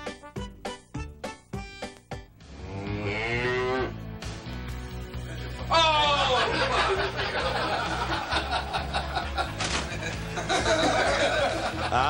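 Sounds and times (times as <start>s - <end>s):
cow mooing: 2.5s - 4.0s.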